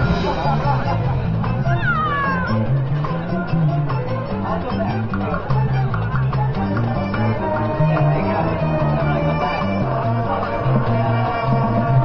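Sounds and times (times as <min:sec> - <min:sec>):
marching band playing: 0:00.0 - 0:03.6.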